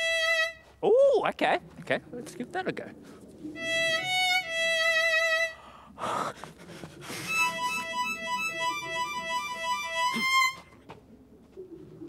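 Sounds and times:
violin playing: 0.0 - 0.7, 3.6 - 5.6, 7.3 - 10.8.

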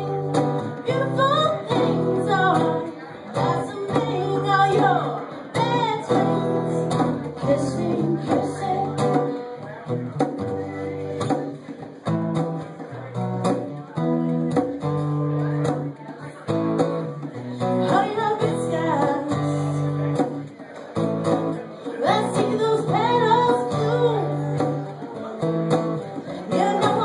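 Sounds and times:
woman singing: 0.0 - 9.5, 17.6 - 20.1, 22.0 - 24.8, 26.2 - 27.0
acoustic guitar strumming: 0.0 - 27.0.

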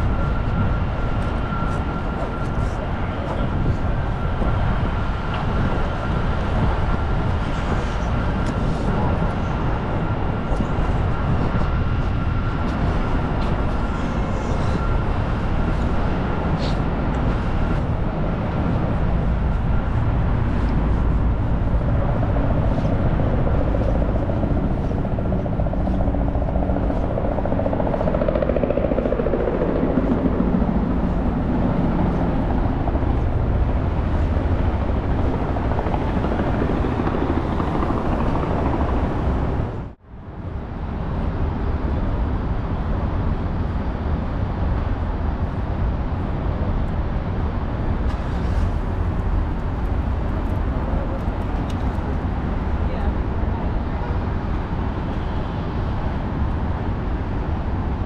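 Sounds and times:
city traffic rumble: 0.0 - 58.0
helicopter engine and rotor: 0.0 - 58.0
thin steady whine: 0.0 - 58.0.

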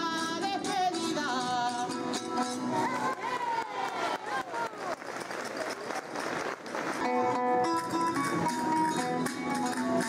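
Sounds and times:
person singing: 0.0 - 3.6
guitars strummed and plucked: 0.0 - 3.8, 6.9 - 10.0.

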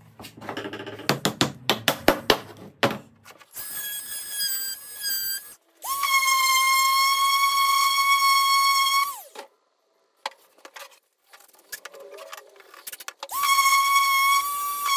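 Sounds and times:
oscillating multi-tool whining: 3.6 - 9.4.

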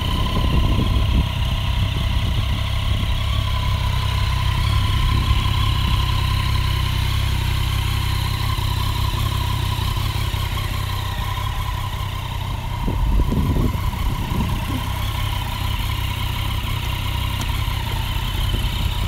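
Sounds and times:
motorcycle engine idling: 0.0 - 19.0.

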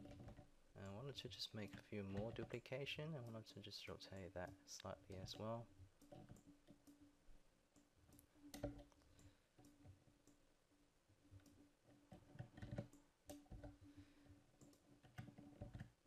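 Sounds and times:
computer mouse and keyboard clicks: 0.0 - 0.5, 1.3 - 7.1, 7.8 - 10.4, 11.3 - 13.9, 14.6 - 16.0.

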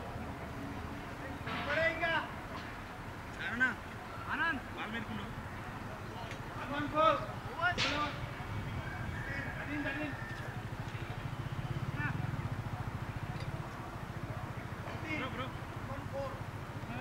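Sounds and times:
distant men calling: 0.0 - 17.0.

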